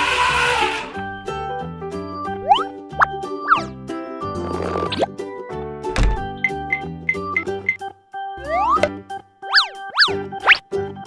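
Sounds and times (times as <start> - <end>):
light children's background music: 0.0 - 11.0
cartoon boings: 8.4 - 10.2.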